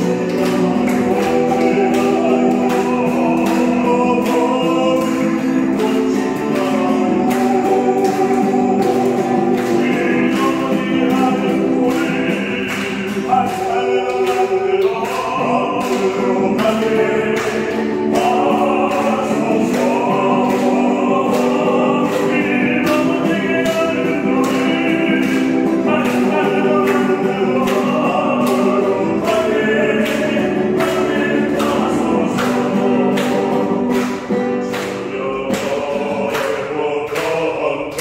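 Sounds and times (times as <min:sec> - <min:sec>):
acoustic guitar strumming: 0:00.0 - 0:38.0
voices singing worship song: 0:00.0 - 0:38.0.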